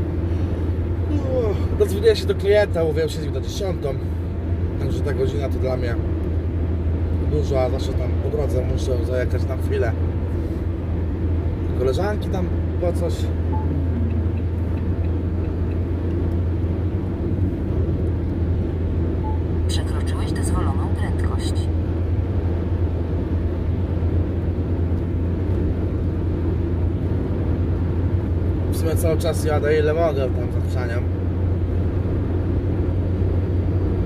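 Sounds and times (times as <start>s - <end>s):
vehicle engine and tyre drone: 0.0s - 34.0s.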